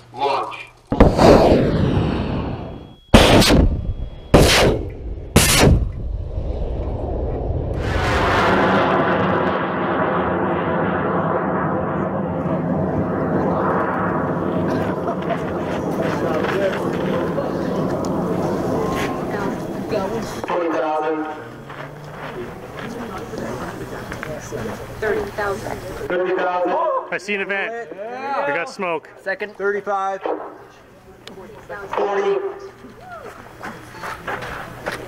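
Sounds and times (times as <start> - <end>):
rocket motor rumble: 0.8 - 26.1
rocket motor ignition blast: 0.9 - 26.1
loud cracks: 3.1 - 3.8, 4.4 - 6.0.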